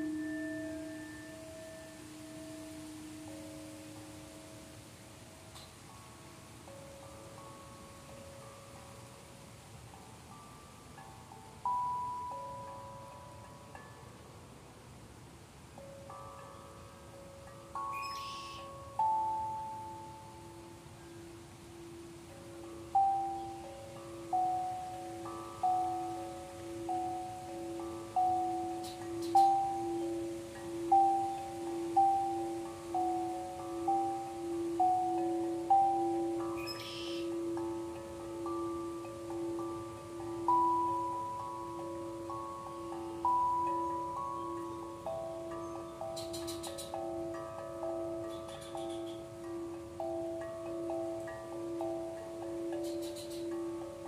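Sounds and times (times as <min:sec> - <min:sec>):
singing bowl strikes ringing: 0:00.0 - 0:04.8, 0:22.6 - 0:54.0
low sustained bowl tone: 0:00.0 - 0:54.0.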